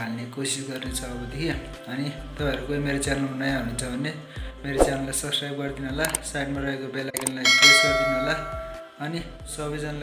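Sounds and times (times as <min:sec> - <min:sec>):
speech: 0:00.0 - 0:10.0
bright bell ding: 0:07.4 - 0:09.0.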